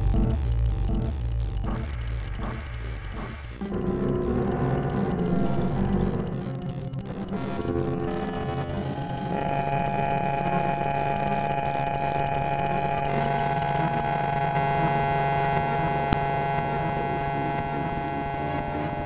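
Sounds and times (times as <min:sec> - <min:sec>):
glitch electronic drone: 0:00.0 - 0:19.0.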